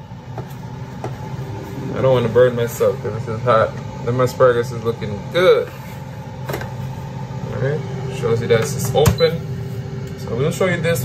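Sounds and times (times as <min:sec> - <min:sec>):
air fryer fan humming: 0:00.0 - 0:11.0.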